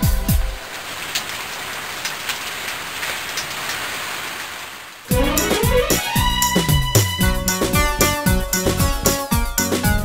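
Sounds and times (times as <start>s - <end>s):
steady rain: 0.0s - 7.9s
children's song note: 5.1s - 7.2s.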